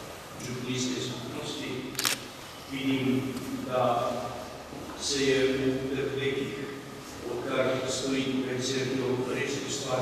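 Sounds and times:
man speaking: 0:00.4 - 0:02.0, 0:02.7 - 0:04.4, 0:05.0 - 0:10.0.

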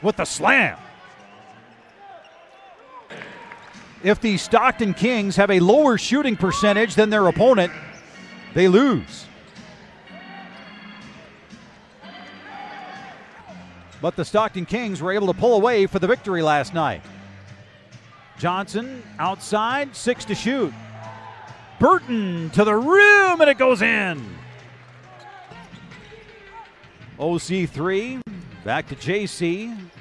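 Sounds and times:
sneakers squeaking: 0:00.8 - 0:03.4, 0:09.2 - 0:14.1, 0:24.6 - 0:27.2.

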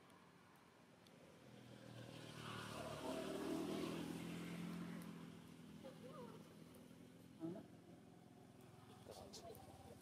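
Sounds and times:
vehicle engine passing by: 0:01.7 - 0:05.4.

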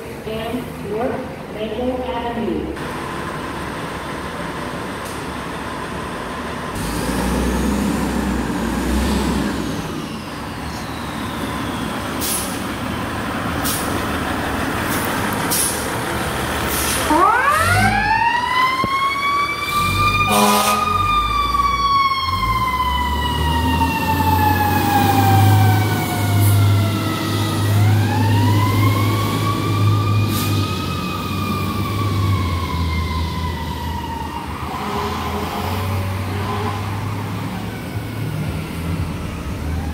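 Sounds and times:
diesel engine rumbling: 0:00.0 - 0:39.9
fire truck siren wailing: 0:05.4 - 0:39.9
horn blast: 0:20.3 - 0:21.0, 0:34.7 - 0:37.2.

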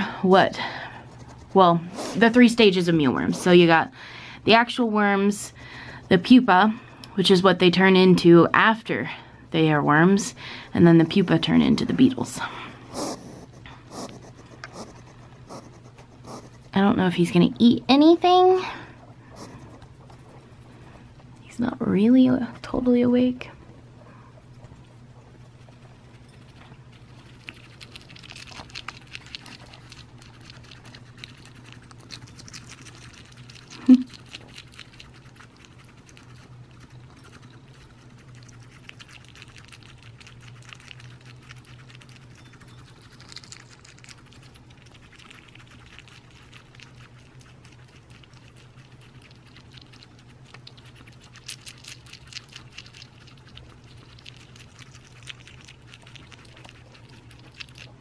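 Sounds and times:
low steady hum: 0:00.0 - 0:58.0
hedgehog crunching food: 0:00.9 - 0:03.9, 0:10.8 - 0:21.5, 0:24.4 - 0:58.0.

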